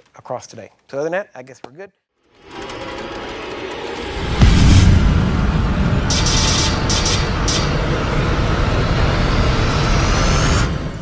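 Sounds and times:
slowly rising sweep: 3.5s - 7.0s
airy whooshes: 4.0s - 6.2s
heavy low rumble: 4.1s - 11.0s.

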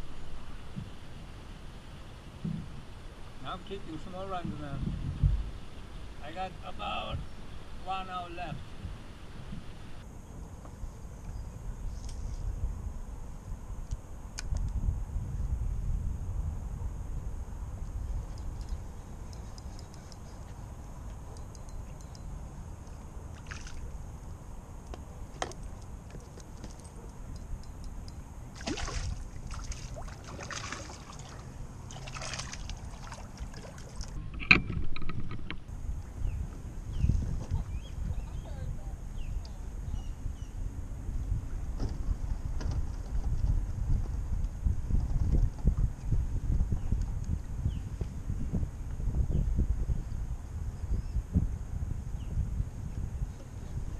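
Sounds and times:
steady low rumble: 0.0s - 10.3s
short splashes: 23.4s - 23.9s, 28.5s - 34.2s
water lapping against kayak hull: 28.6s - 34.2s.

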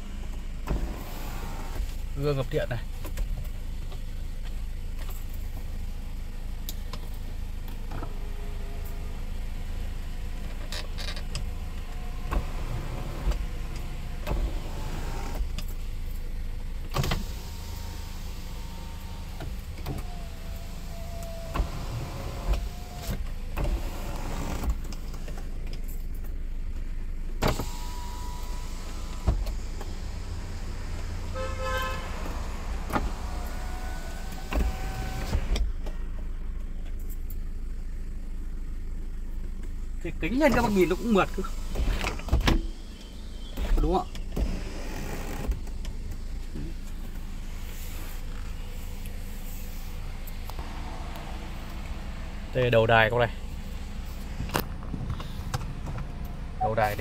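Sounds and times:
power window motor whine: 0.2s - 1.9s, 7.8s - 15.7s, 16.8s - 25.6s, 27.4s - 36.0s, 40.4s - 57.0s.

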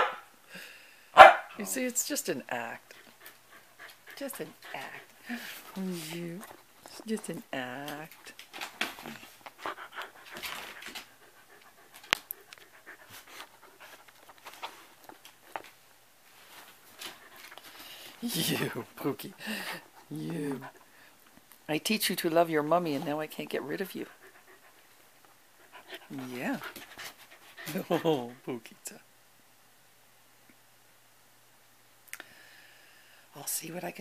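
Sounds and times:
dog panting: 1.2s - 15.6s, 16.5s - 21.2s, 21.9s - 28.4s.

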